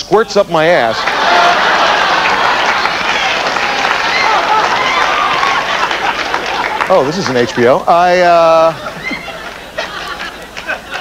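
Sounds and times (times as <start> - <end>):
audience laughing and clapping: 0.8 - 11.0.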